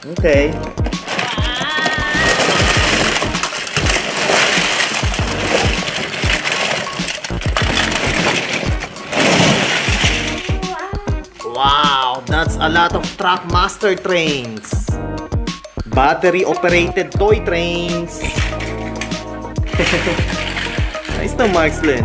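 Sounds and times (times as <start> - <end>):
background music with steady beat: 0.0 - 1.1, 10.0 - 22.0
plastic toys clattering onto carpet: 0.7 - 12.5, 17.9 - 22.0.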